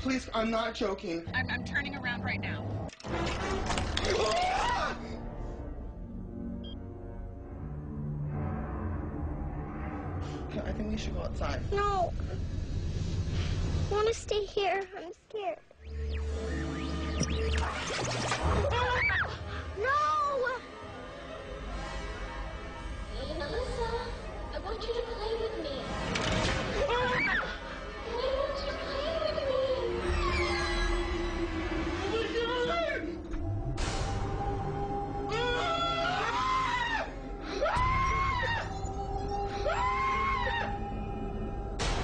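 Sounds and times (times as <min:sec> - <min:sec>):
low droning music: 0:00.0 - 0:13.9, 0:15.8 - 0:42.0
sharp hit: 0:41.8 - 0:42.0.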